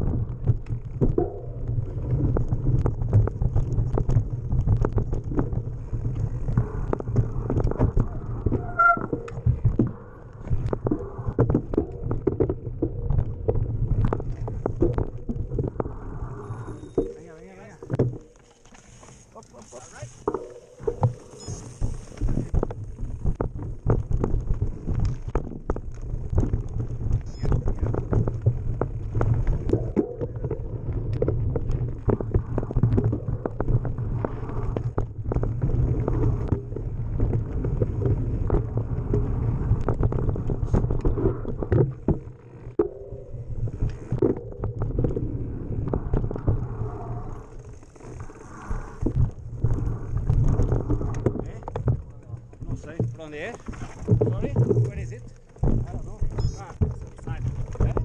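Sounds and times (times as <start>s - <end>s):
wheels knocking and rattling on rocks: 0.0s - 15.8s, 16.8s - 58.0s
bike rumbling over rough trail: 0.0s - 58.0s.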